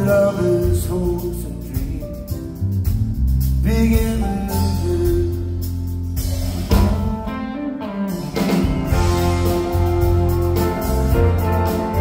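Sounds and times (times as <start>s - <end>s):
man singing: 0.0s - 2.5s, 3.6s - 5.7s, 6.7s - 7.8s
live rock band playing: 0.0s - 12.0s.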